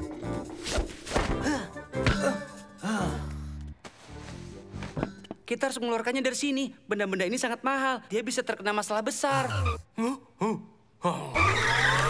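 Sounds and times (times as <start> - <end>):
cartoon skidding screech: 11.4 - 12.0.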